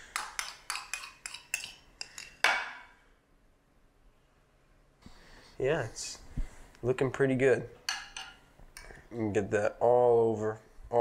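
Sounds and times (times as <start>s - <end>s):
metal spoon clinking on ceramic bowl: 0.2s - 2.5s, 7.9s - 8.4s.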